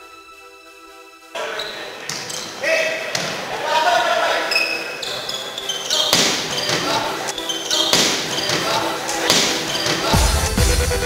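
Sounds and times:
background music: 0:00.0 - 0:11.0
players shouting in a hall: 0:01.3 - 0:11.0
volleyball hits: 0:02.0 - 0:10.4.

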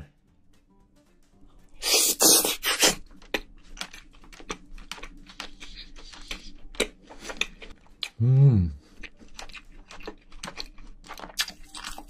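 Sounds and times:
slurping bite: 0:01.8 - 0:03.5
wet chewing clicks: 0:01.8 - 0:08.2, 0:08.8 - 0:12.0.

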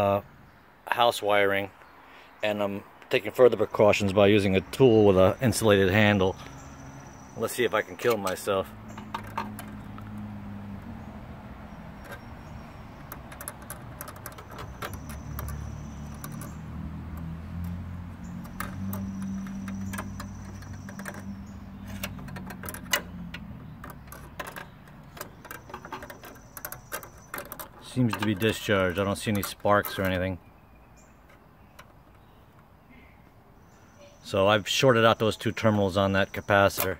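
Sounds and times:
metal tool clicking and scraping: 0:13.0 - 0:17.8.

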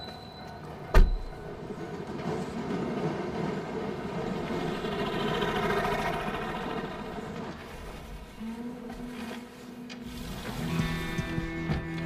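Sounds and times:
steady rumbling noise: 0:02.9 - 0:09.1.

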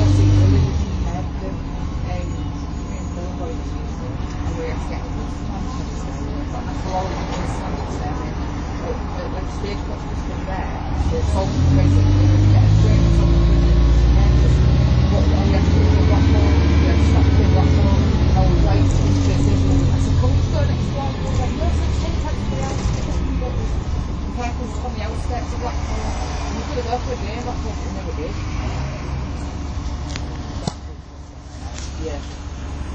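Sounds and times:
bus diesel engine from inside: 0:00.0 - 0:32.9.

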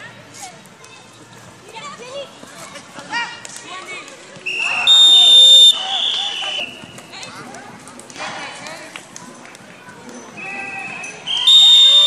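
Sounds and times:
referee's whistle blast: 0:04.5 - 0:06.7, 0:11.3 - 0:12.0.

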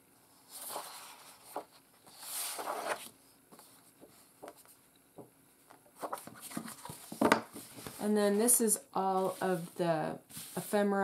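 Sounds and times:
paper rustling and scraping: 0:00.5 - 0:04.7, 0:06.0 - 0:08.1, 0:09.1 - 0:10.8.

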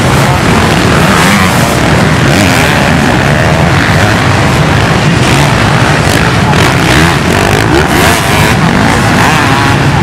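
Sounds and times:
motorcycle engines revving: 0:00.0 - 0:10.0.

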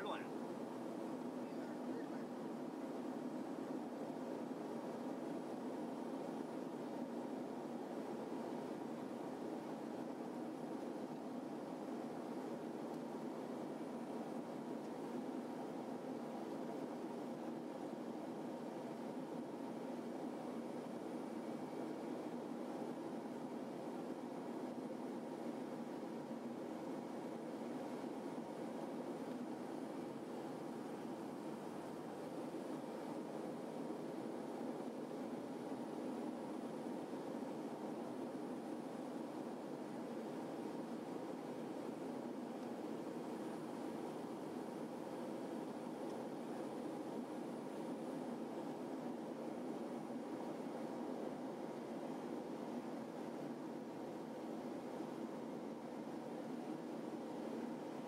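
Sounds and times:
turboprop aircraft cabin drone: 0:00.0 - 0:58.0.

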